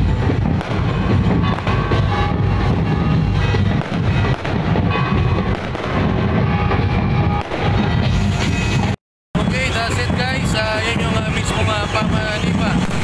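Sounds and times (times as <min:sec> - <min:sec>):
firecrackers banging: 0:00.0 - 0:13.0
music: 0:00.0 - 0:13.0.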